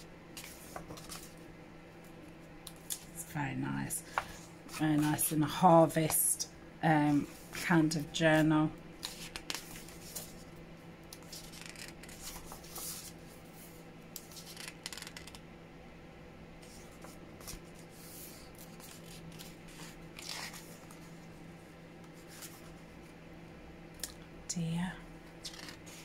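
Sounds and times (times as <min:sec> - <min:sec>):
faint steady hum: 0:00.0 - 0:26.0
book pages rustling: 0:00.4 - 0:01.5, 0:04.0 - 0:06.2, 0:07.0 - 0:10.5, 0:11.1 - 0:15.4, 0:16.6 - 0:21.4, 0:22.0 - 0:22.8, 0:25.4 - 0:26.0.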